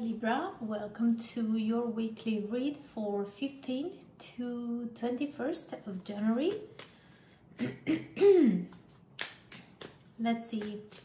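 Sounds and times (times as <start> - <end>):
woman clearing her throat: 7.6 - 8.7.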